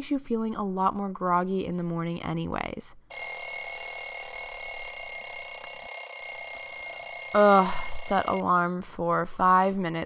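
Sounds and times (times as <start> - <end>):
high-pitched phone alarm ringing: 3.1 - 8.4.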